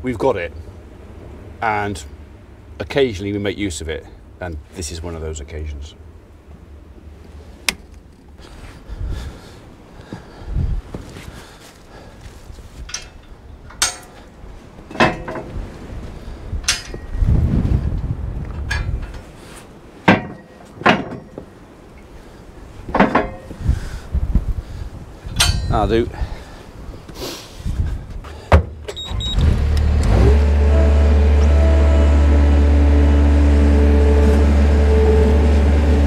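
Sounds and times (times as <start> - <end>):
metal bars clanking: 12.8 - 15.6, 16.6 - 17.2, 18.6 - 19.3, 20.1 - 21.4, 22.9 - 23.5, 25.3 - 26.0.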